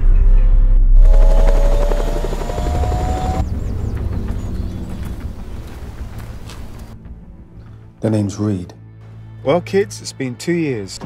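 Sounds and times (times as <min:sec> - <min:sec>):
deep rumble: 0:00.0 - 0:07.0
turbine whine: 0:00.9 - 0:06.9
helicopter rotor chopping: 0:01.0 - 0:06.9.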